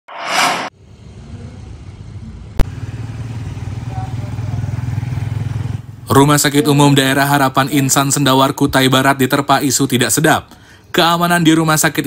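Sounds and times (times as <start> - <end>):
brief whoosh: 0.0 - 1.4
motorcycle engine approaching: 1.2 - 6.0.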